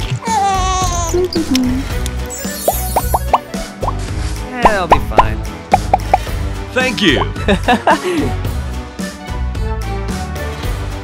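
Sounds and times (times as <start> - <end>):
background music: 0.0 - 11.0
cartoon bloop blips: 2.6 - 4.0, 4.6 - 6.2.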